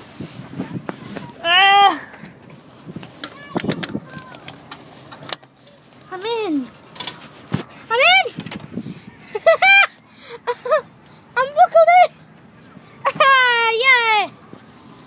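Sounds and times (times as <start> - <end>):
boy's high-pitched vocal sounds: 0.6 - 2.2
handling knocks and clicks: 2.4 - 5.8, 6.9 - 7.7
boy laughing yelps: 9.2 - 11.8.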